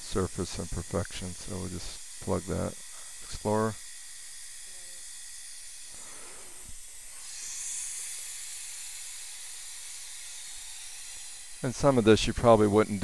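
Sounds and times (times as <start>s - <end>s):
dental suction hissing: 0.0s - 13.0s.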